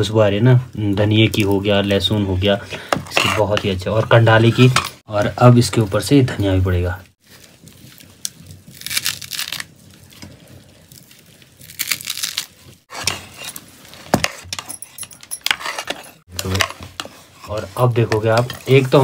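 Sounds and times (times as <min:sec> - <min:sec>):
leaves crushed by hand: 0:07.3 - 0:10.2, 0:10.9 - 0:12.8.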